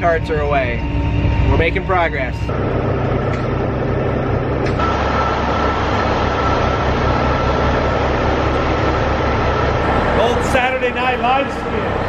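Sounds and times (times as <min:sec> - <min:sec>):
low rumble: 0:00.0 - 0:12.0
door motor whining: 0:02.5 - 0:12.0.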